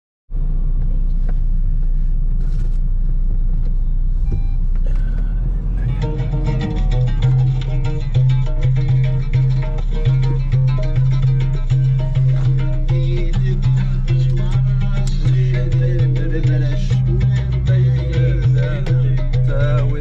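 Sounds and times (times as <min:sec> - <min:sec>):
car cabin rumble: 0:00.3 - 0:20.0
music with bass line: 0:02.3 - 0:20.0.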